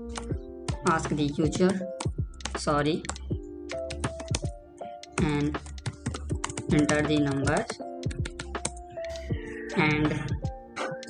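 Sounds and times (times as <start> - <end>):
soft background music: 0.0 - 11.0
typing on computer keyboard: 1.1 - 8.8.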